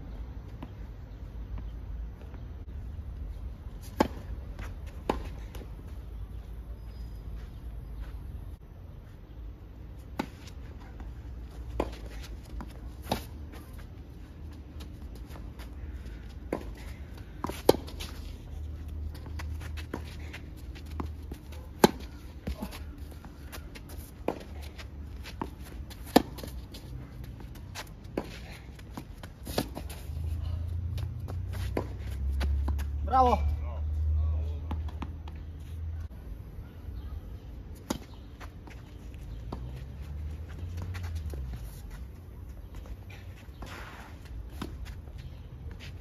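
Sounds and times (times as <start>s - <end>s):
tennis ball struck by racquets: 21.7s - 22.7s.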